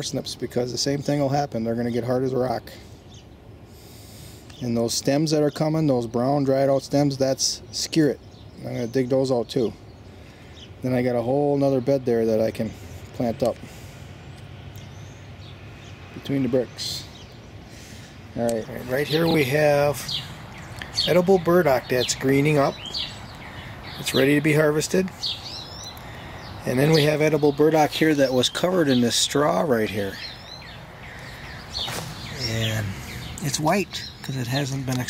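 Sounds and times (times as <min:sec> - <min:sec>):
birds chirping: 0:00.0 - 0:35.0
faint outdoor background noise: 0:00.0 - 0:35.0
steady low hum: 0:00.0 - 0:35.0.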